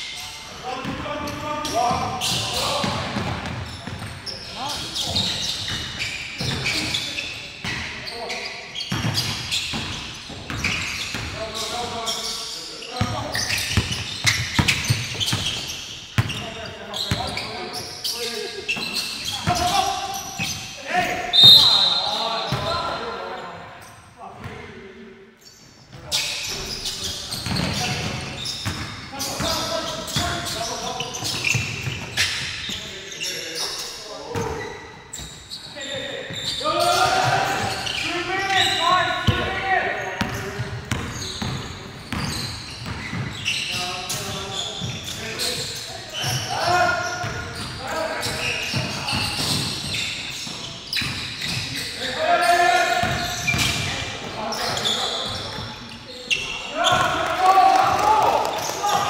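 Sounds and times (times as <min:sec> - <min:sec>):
basketball bouncing on court: 0:00.8 - 0:04.2, 0:08.9 - 0:11.4, 0:13.0 - 0:16.4, 0:18.7 - 0:19.8, 0:26.5 - 0:30.6, 0:40.2 - 0:43.5, 0:53.0 - 0:53.9
shrill whistle blast: 0:21.3 - 0:22.2
players shouting: 0:36.6 - 0:40.1.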